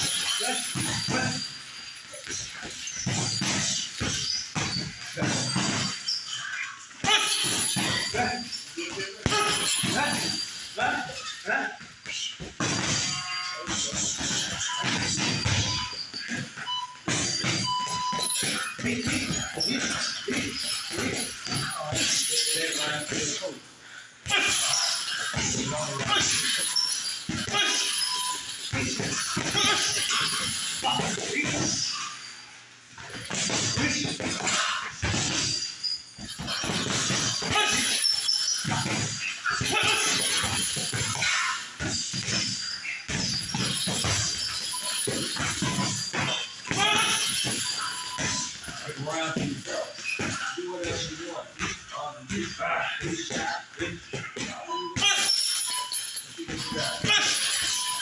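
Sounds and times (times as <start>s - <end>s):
voices: 0.0s - 4.1s, 5.0s - 32.3s, 36.2s - 58.0s
chains rattling: 0.0s - 58.0s.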